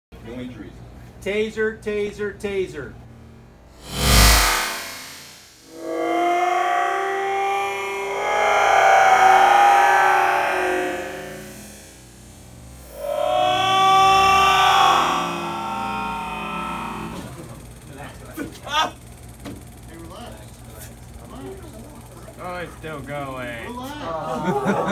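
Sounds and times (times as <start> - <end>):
loud taser burst: 3.7 - 18.4
slowed man crying out: 7.4 - 11.9, 12.8 - 17.7.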